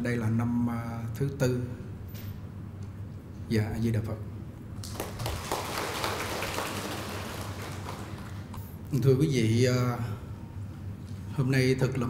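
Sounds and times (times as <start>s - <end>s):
audience applauding: 4.8s - 8.7s.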